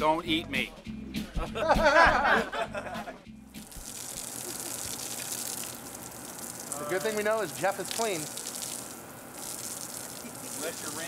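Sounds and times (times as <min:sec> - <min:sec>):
music: 0:00.0 - 0:04.4
garden hose spraying water: 0:03.6 - 0:11.0.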